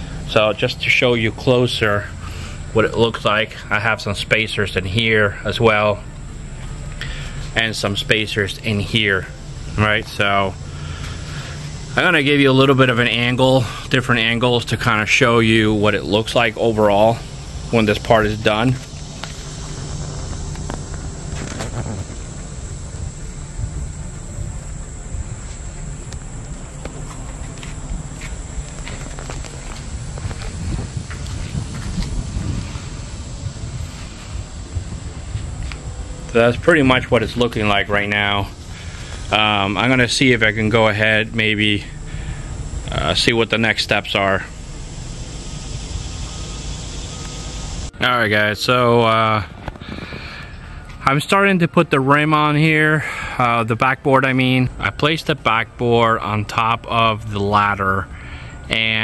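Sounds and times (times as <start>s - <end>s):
low rumble: 0.0s - 48.0s
high-pitched whine: 0.0s - 59.0s
steady outdoor rush: 0.0s - 59.0s.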